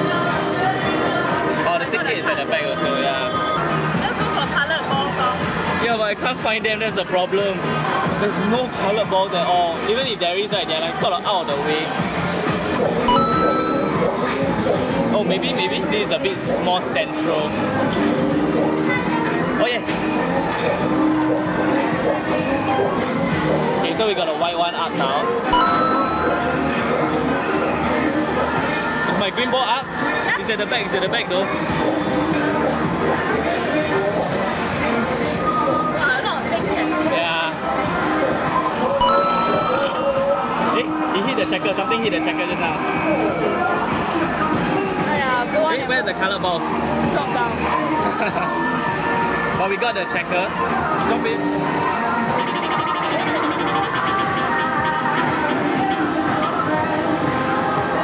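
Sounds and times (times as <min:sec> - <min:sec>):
arcade machine music and noise: 0:00.0 - 0:58.0
electronic bell-like chime: 0:13.1 - 0:14.2, 0:25.5 - 0:26.7, 0:39.0 - 0:40.2.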